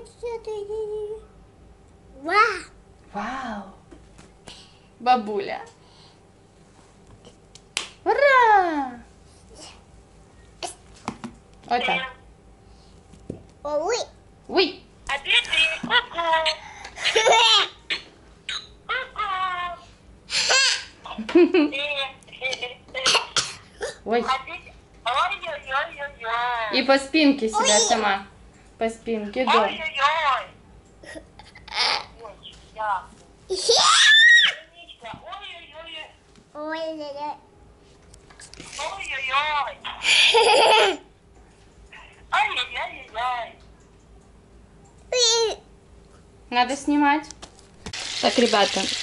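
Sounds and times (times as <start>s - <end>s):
toddler giggling and laughing: 17.0s - 18.0s, 31.0s - 32.2s, 33.5s - 34.2s, 40.0s - 41.1s
toddler babbling: 27.6s - 28.1s, 45.1s - 45.6s
toddler girl laughing and squealing: 33.5s - 34.6s.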